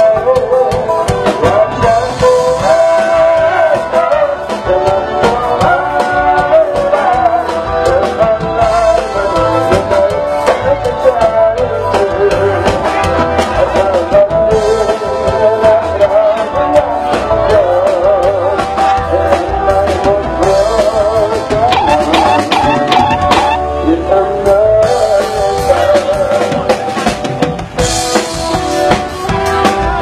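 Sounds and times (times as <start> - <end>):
steady drum beat: 0.0 - 23.8, 24.4 - 30.0
person singing: 0.0 - 30.0.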